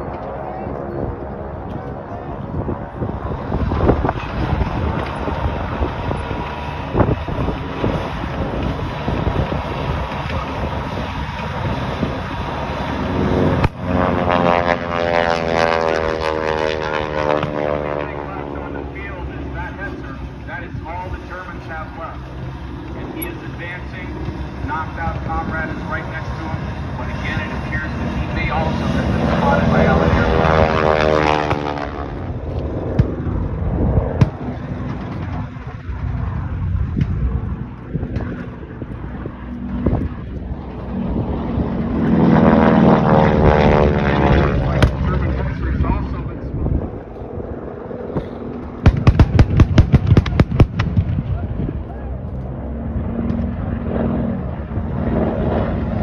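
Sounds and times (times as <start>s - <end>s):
low engine rumble: 0.0s - 56.0s
propeller aircraft passing: 0.0s - 56.0s
sharp crack: 48.2s - 51.4s.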